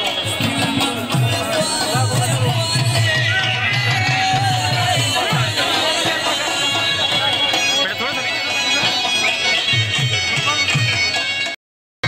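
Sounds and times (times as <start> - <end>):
drum beats: 0.0 - 11.6
reed pipe melody: 0.0 - 11.6.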